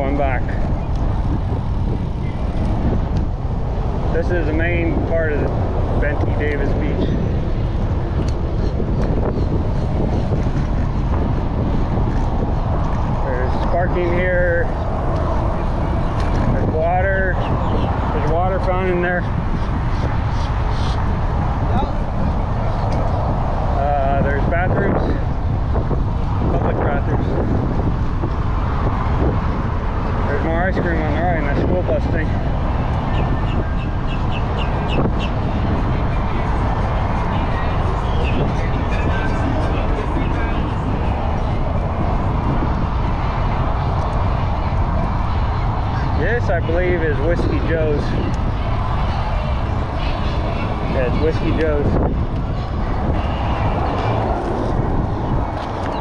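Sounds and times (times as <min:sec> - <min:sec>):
car traffic passing: 0:00.0 - 0:56.0
wind and road noise on microphone: 0:00.0 - 0:56.0.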